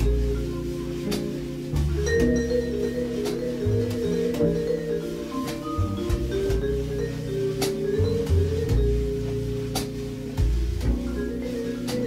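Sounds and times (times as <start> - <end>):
bass: 0.0 - 12.0
vibraphone: 1.9 - 12.0.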